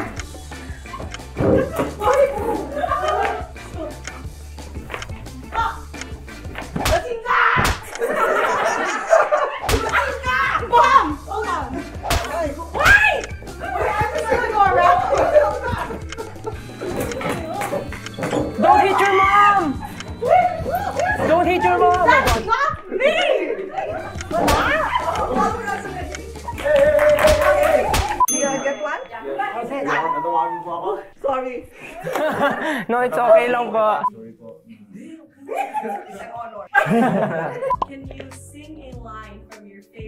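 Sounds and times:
excited voices: 0:00.0 - 0:04.3, 0:05.0 - 0:34.0
people shouting: 0:05.5 - 0:05.9, 0:06.8 - 0:16.0, 0:16.8 - 0:28.2
people shrieking: 0:07.2 - 0:07.7, 0:08.5 - 0:18.0, 0:18.6 - 0:28.2, 0:29.7 - 0:30.8
scuffling: 0:09.8 - 0:28.7
bell ding: 0:28.3 - 0:29.9.

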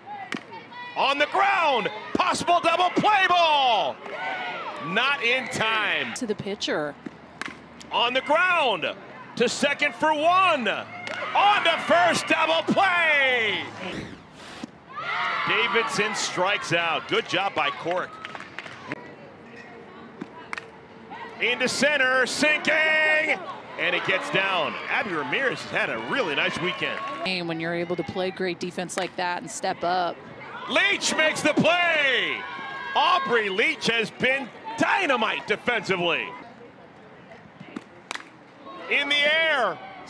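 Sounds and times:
crowd murmur: 0:10.4 - 0:14.7, 0:18.3 - 0:28.6.

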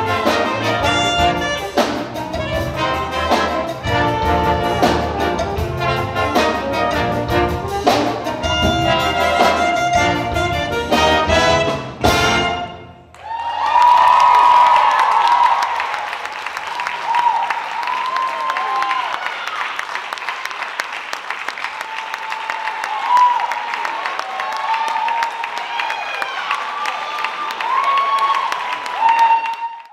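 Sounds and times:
audience applauding: 0:13.1 - 0:29.9.

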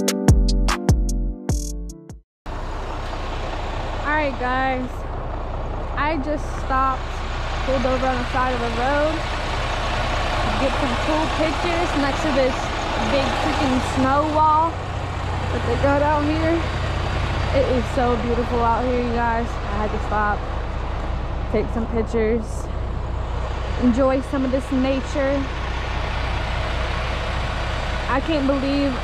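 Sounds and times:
diesel truck engine idling: 0:02.5 - 0:29.0.

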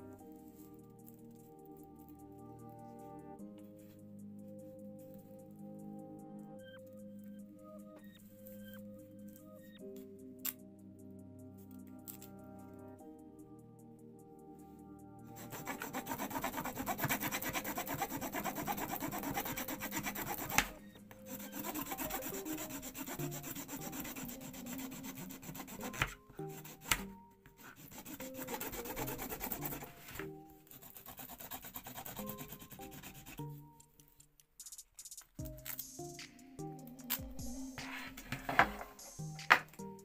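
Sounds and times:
stick rubbing over foil on metal: 0:15.4 - 0:27.0, 0:27.6 - 0:33.4.

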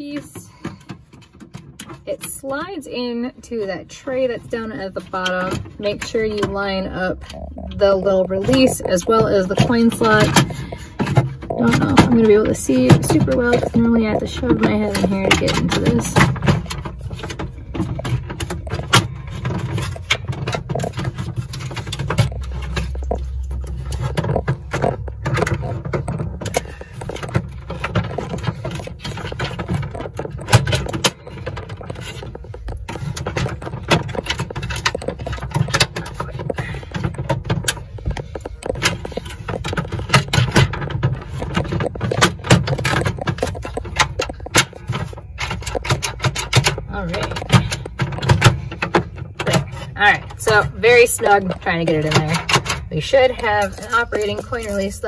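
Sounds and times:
plastic parts clicking and scraping: 0:00.0 - 0:55.0
low handling rumble: 0:02.0 - 0:55.0.

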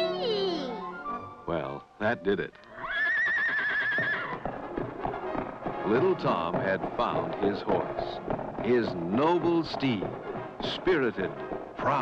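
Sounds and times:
music: 0:00.0 - 0:12.0
cartoon horse whinny: 0:02.7 - 0:04.4.

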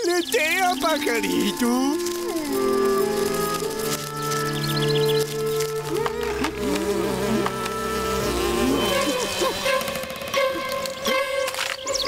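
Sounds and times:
hummingbird wings humming: 0:00.1 - 0:12.0.

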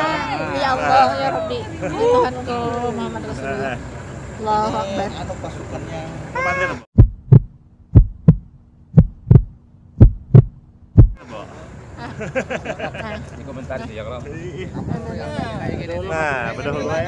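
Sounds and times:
people talking and laughing: 0:00.0 - 0:06.9, 0:11.2 - 0:17.0
heartbeat sound effect: 0:07.0 - 0:11.2.

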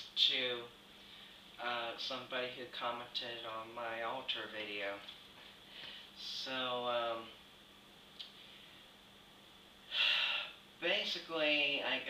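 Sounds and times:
man speaking: 0:00.0 - 0:00.7, 0:01.6 - 0:05.1, 0:06.2 - 0:07.4, 0:10.8 - 0:12.0
man's sharp intake of breath: 0:09.9 - 0:10.6.

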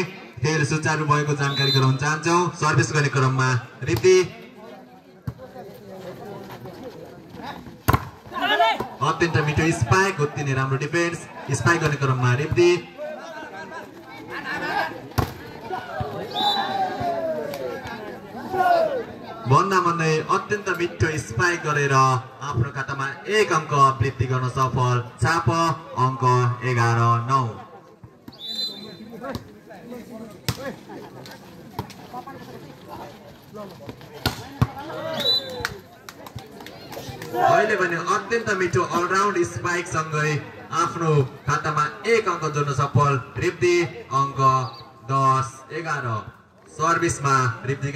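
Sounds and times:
spectators chattering and calling: 0:00.0 - 0:47.9
volleyball smacks: 0:07.9 - 0:08.1, 0:15.2 - 0:15.4, 0:34.2 - 0:34.8
people shouting: 0:15.7 - 0:19.4, 0:37.2 - 0:37.8.

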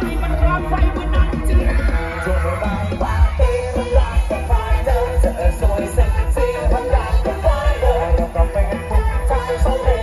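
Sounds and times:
loud dance music over loudspeakers: 0:00.0 - 0:10.0.

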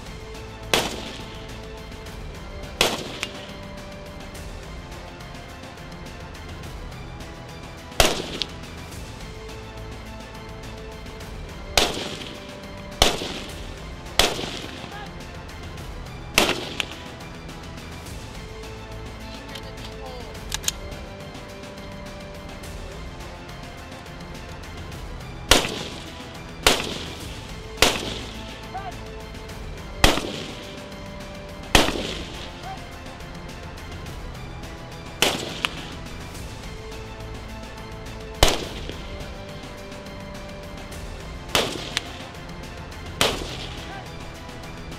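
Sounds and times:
background music: 0:00.0 - 0:44.9
gunshots: 0:00.6 - 0:04.4, 0:07.8 - 0:09.0, 0:11.6 - 0:17.4, 0:25.4 - 0:37.0, 0:37.7 - 0:44.9
loud gunshot: 0:00.7 - 0:01.5, 0:02.8 - 0:03.6, 0:08.0 - 0:08.6, 0:11.7 - 0:15.1, 0:16.3 - 0:17.1, 0:25.5 - 0:28.6, 0:30.0 - 0:30.9, 0:31.7 - 0:32.7, 0:35.2 - 0:36.1, 0:38.4 - 0:39.0, 0:41.5 - 0:42.2, 0:43.2 - 0:44.0.

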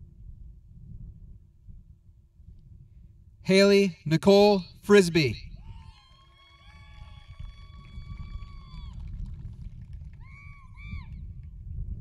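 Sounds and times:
wind rumble on microphone: 0:00.0 - 0:03.4, 0:05.4 - 0:12.0.

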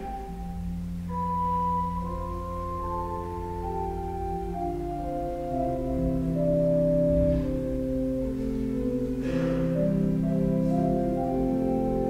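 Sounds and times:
church organ sustained notes: 0:00.0 - 0:12.0.

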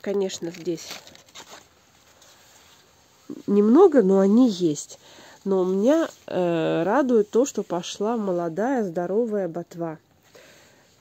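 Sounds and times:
leaves rustling against phone: 0:00.0 - 0:03.7
soft crackles: 0:00.0 - 0:08.9
low background hiss: 0:00.0 - 0:11.0.

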